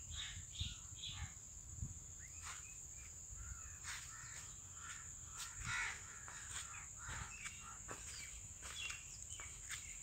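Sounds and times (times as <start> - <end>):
birds calling: 0.0 - 10.0.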